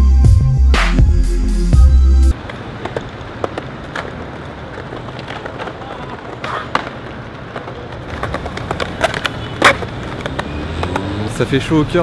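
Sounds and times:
skateboard wheels rolling on stone: 2.3s - 12.0s.

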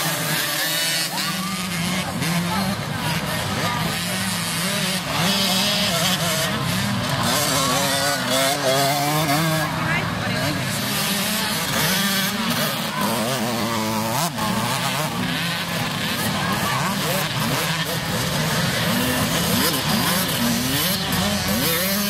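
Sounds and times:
dirt bike engines revving: 0.0s - 22.0s
spectators' voices: 0.0s - 22.0s.

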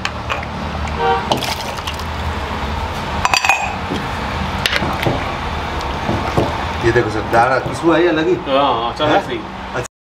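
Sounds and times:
metal ladle clinking on pot: 3.2s - 3.8s.

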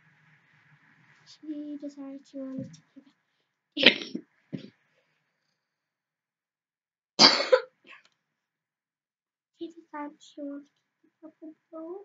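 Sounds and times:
girl coughing loudly: 7.2s - 7.8s.

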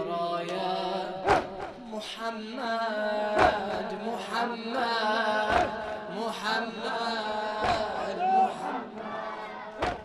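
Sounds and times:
crowd of men calling out: 7.6s - 10.0s.

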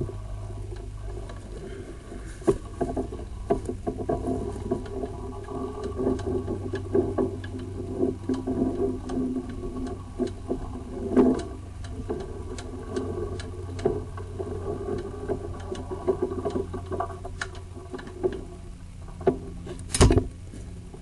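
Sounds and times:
cable clicks and knocks: 0.0s - 21.0s
steady low hum: 0.0s - 21.0s.

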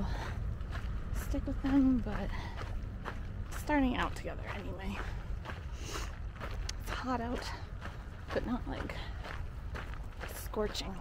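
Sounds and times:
footsteps on trail: 0.0s - 11.0s
wind rumbling on microphone: 0.0s - 11.0s.

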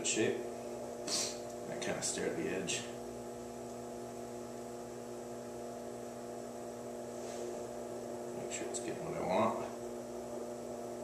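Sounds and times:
potter's wheel motor hum: 0.0s - 11.0s.

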